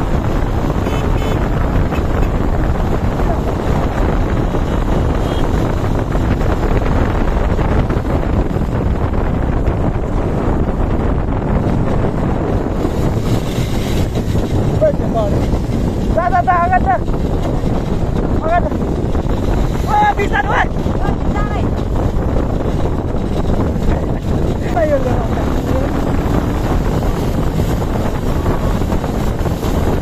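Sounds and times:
motorcycle engine: 0.0s - 30.0s
wind rushing over microphone: 0.0s - 30.0s.

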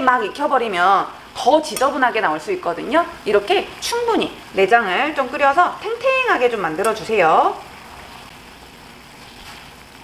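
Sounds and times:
water boiling in a saucepan: 0.0s - 10.0s.

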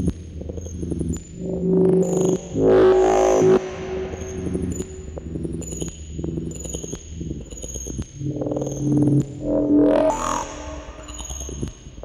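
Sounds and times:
low shifting synth tones: 1.4s - 5.5s
loud pitched synth tone: 2.5s - 5.0s.

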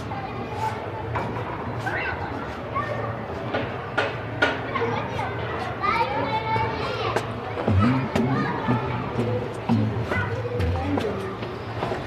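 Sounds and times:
children calling and playing: 0.0s - 12.0s.

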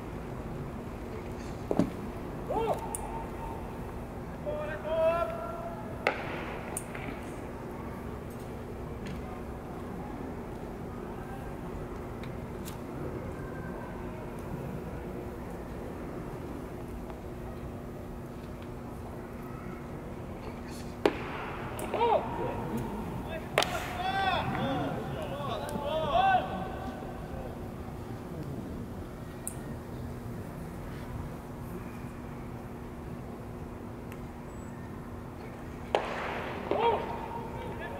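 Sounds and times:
person shouting: 2.5s - 2.8s, 23.8s - 26.8s
baseball smacking into leather glove: 23.5s - 24.6s.

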